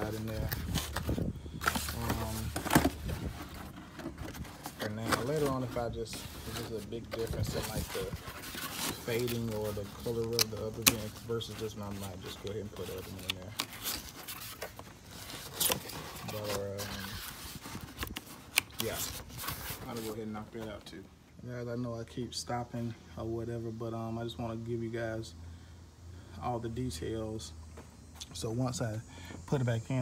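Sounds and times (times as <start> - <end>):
rustling and handling noises: 0.0 - 21.0.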